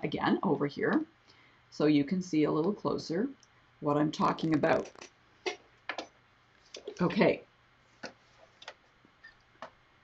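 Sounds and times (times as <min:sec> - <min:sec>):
quiet clicks and taps: 0:08.0 - 0:09.8.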